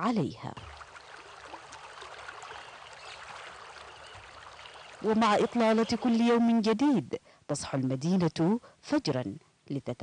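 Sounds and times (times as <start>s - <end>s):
river water rushing: 0.6s - 6.3s.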